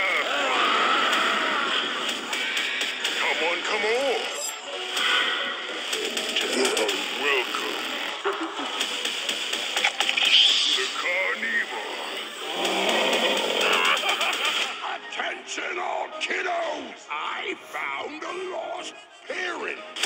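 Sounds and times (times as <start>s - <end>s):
animatronic sound effects: 0.0s - 14.8s
spooky music: 0.0s - 20.0s.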